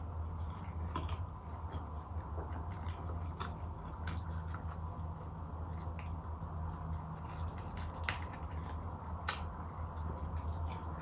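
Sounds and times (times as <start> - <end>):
steady low hum: 0.0 - 11.0
chewing with wet clicks: 0.4 - 11.0.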